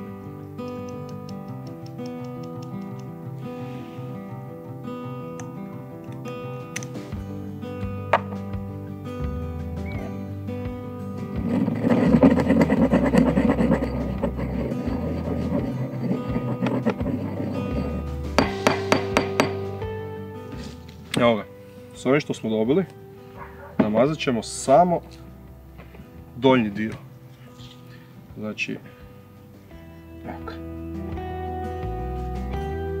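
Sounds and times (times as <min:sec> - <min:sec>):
background music: 0:00.0 - 0:33.0
pestle grinding in stone mortar: 0:11.2 - 0:19.8.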